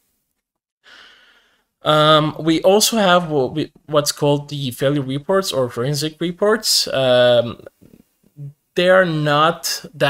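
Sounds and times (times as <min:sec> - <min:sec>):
person breathing in softly: 0:00.8 - 0:01.7
person speaking: 0:01.8 - 0:10.0.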